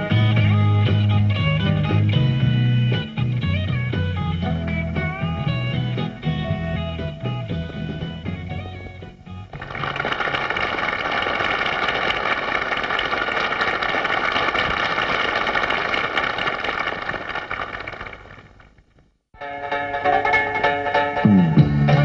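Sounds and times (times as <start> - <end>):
audience applauding and cheering: 9.6 - 18.5.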